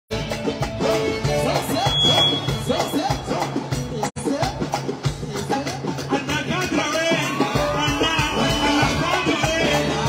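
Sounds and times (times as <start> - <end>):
live band music: 0.1 - 10.0.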